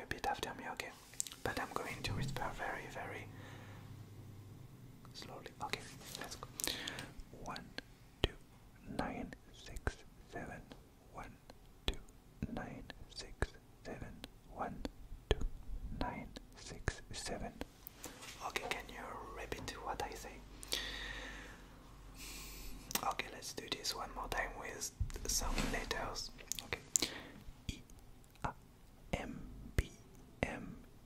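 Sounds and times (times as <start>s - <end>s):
man whispering: 0.0s - 3.4s, 5.1s - 17.7s, 18.3s - 20.9s, 22.8s - 30.9s.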